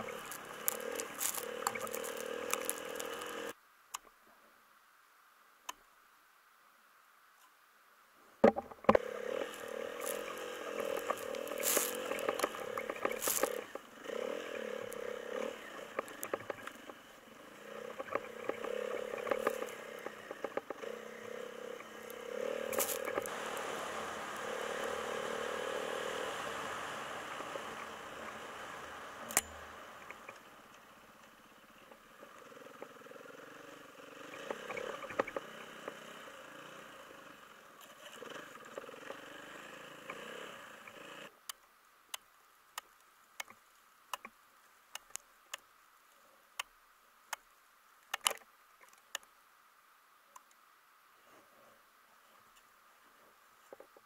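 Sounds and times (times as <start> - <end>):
small vehicle engine droning: 0.0 - 3.6, 8.8 - 41.4.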